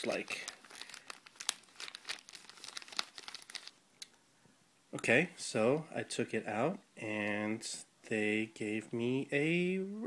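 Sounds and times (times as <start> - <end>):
packaging crinkling and rustling: 0.0 - 3.8.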